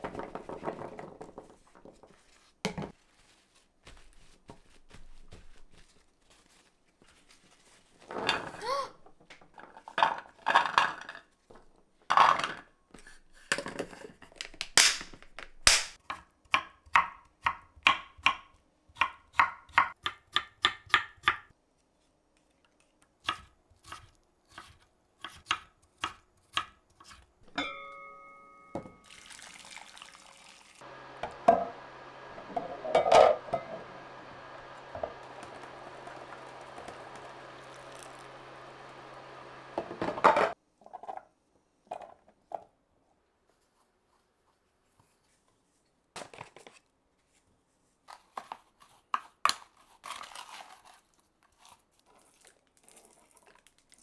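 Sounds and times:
cloth rustling: 1.6 - 8.1
pot of water heating hiss: 29.2 - 40.2.

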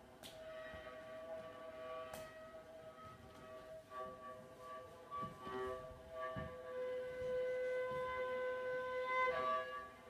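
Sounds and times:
viola bowed softly: 0.0 - 10.0.

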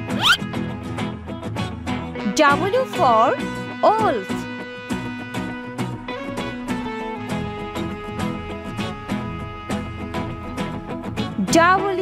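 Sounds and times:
rising zip sound effect: 0.0 - 0.4
bouncy instrumental music: 0.0 - 12.0.

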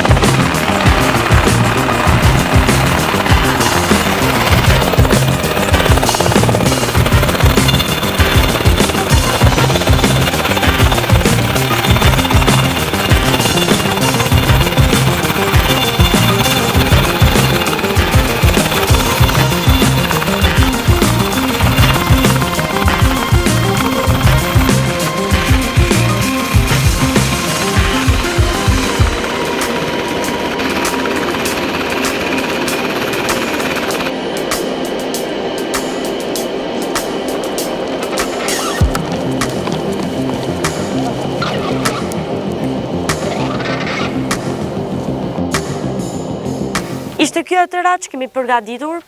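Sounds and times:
helicopter rotor beating: 0.0 - 47.4
background music: 0.0 - 49.0.

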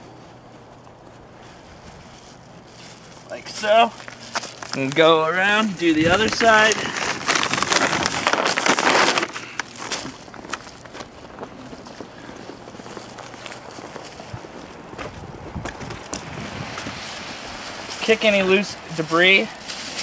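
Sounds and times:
fabric rustling: 0.0 - 15.3.

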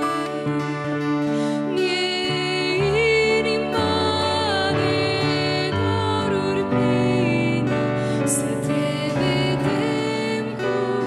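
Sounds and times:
strummed acoustic guitar: 0.0 - 11.0
woman singing a hymn: 0.0 - 11.0.

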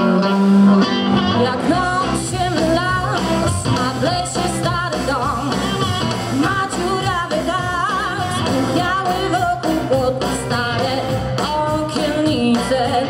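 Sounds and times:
harmonica: 0.0 - 9.7
blues-rock band playing: 0.0 - 13.0
woman singing: 0.2 - 13.0.

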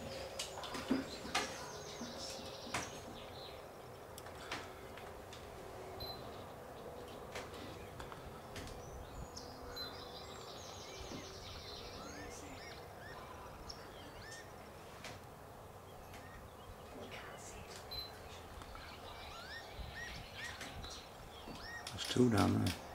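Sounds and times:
background hiss: 0.0 - 22.9
high bird chirps: 16.0 - 21.9.

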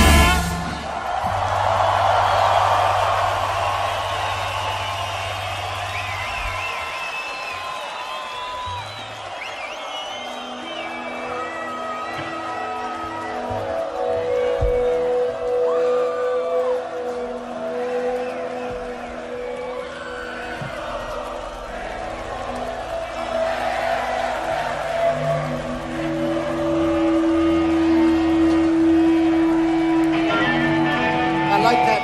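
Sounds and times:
rock band droning tones: 0.0 - 1.6
crowd noise: 0.0 - 32.0.

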